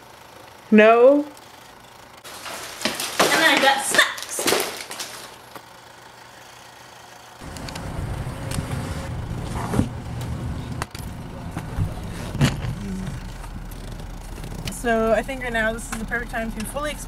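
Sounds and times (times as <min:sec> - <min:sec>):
car engine low rumble: 0:07.4 - 0:17.0.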